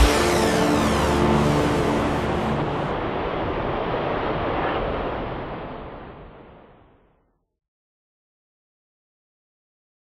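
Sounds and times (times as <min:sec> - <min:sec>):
orchestral music chord: 0:00.0 - 0:03.0
jet roar overhead: 0:00.0 - 0:06.7.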